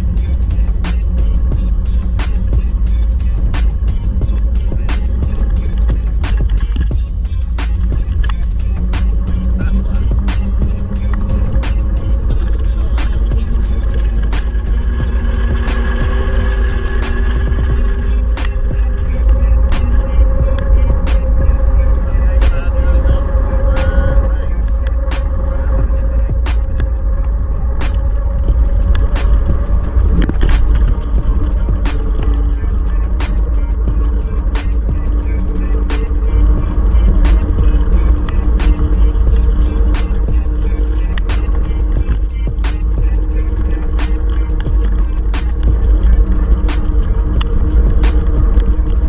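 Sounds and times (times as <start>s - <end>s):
low rumble: 0.0s - 49.0s
song: 0.0s - 49.0s.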